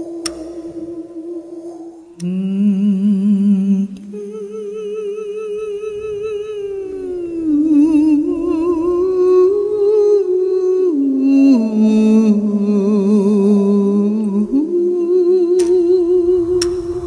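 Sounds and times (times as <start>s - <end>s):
voices singing long notes: 0.0s - 17.0s.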